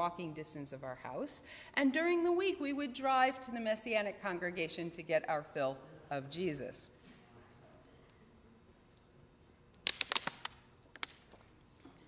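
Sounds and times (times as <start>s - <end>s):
plastic bottle crackling: 9.9s - 11.2s.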